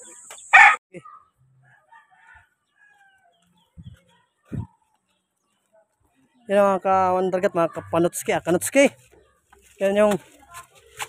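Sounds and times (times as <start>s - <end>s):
chicken calls: 0.0s - 4.9s
chicken squawking: 0.5s - 1.2s.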